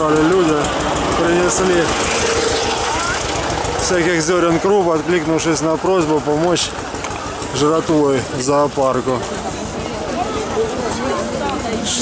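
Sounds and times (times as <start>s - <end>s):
tractor engine idling: 0.0s - 12.0s.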